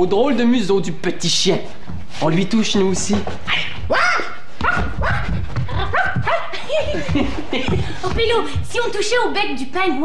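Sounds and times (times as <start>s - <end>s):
people imitating puppy yaps: 3.9s - 6.6s
person laughing: 5.6s - 8.2s.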